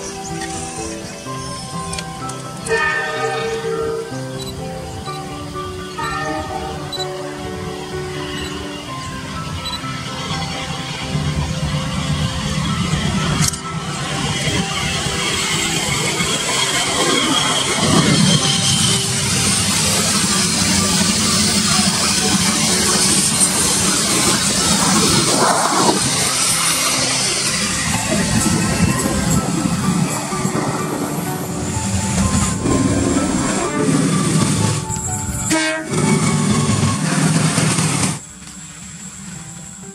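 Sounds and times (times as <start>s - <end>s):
train wheels rumbling on rail: 0.0s - 39.9s.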